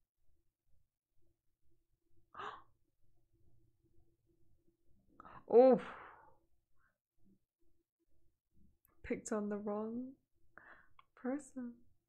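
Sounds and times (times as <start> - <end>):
person breathing out: 2.4 - 2.7.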